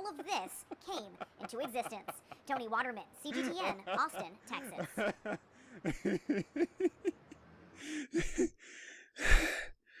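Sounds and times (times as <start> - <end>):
person laughing: 0.0 - 2.7, 3.3 - 7.4.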